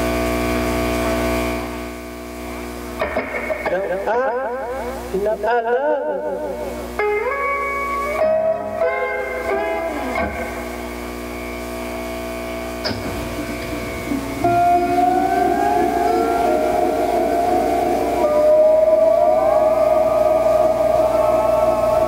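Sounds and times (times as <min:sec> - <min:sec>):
electric guitar notes ringing: 0:02.8 - 0:22.0.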